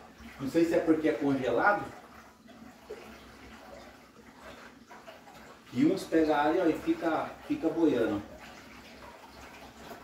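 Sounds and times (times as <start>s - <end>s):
aquarium bubbling water: 0.0s - 10.0s.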